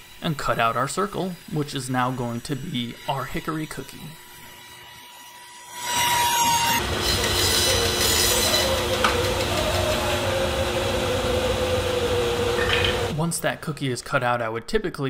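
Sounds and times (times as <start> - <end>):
bandsaw cutting wood: 0.0 - 13.2.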